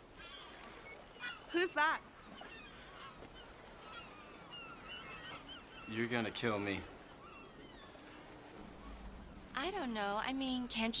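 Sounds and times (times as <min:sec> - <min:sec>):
faint bird calls: 0:00.0 - 0:10.2.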